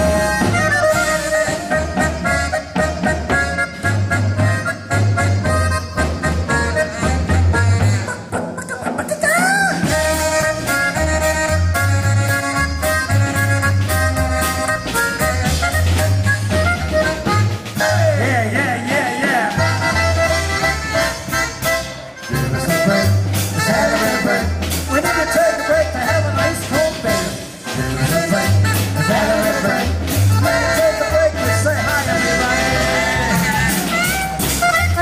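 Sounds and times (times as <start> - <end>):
polka band music: 0.0 - 35.0
snare drum and cymbals: 9.7 - 25.4, 26.1 - 35.0.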